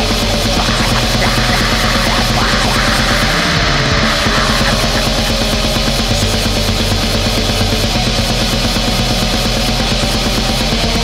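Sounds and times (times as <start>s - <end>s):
distorted guitars and bass: 0.0s - 11.0s
fast drumming: 0.4s - 6.8s.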